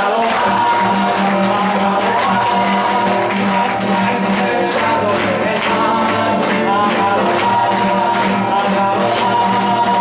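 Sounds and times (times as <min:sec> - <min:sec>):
acoustic guitar strumming: 0:00.0 - 0:10.0
hands clapping along: 0:00.0 - 0:10.0
person singing: 0:00.0 - 0:10.0.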